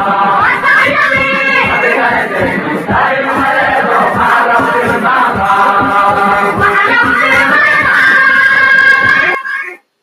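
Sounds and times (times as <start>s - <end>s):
group of voices singing: 0.0s - 9.8s
music: 0.0s - 9.8s.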